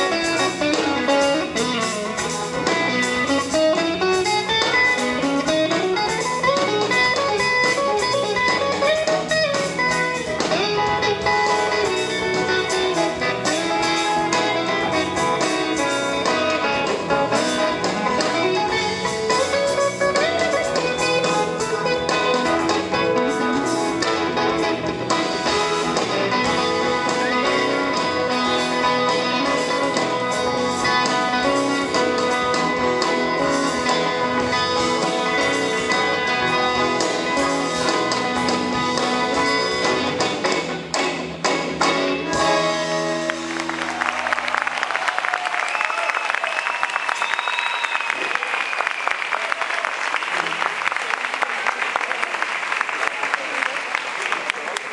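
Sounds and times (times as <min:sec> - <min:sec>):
bass guitar: 0:00.0 - 0:46.0
guitar solo: 0:00.0 - 0:48.6.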